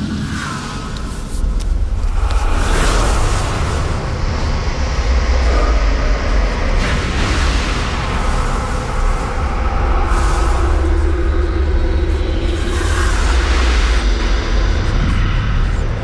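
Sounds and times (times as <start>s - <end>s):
deep steady rumble: 0.0s - 16.0s.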